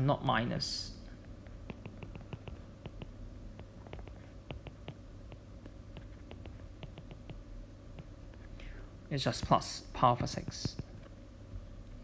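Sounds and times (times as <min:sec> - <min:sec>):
low steady hum: 0:00.0 - 0:12.0
stylus tapping on tablet screen: 0:01.4 - 0:08.2
faint breath: 0:08.5 - 0:09.0.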